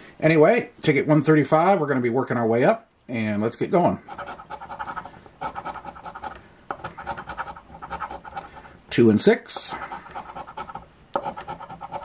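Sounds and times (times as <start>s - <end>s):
coin scratching lottery ticket: 4.1s - 8.7s, 9.7s - 12.0s.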